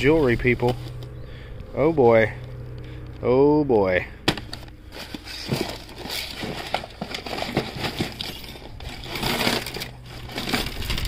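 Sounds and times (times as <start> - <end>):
paper bag rustling: 0.0 - 1.1, 4.3 - 11.0.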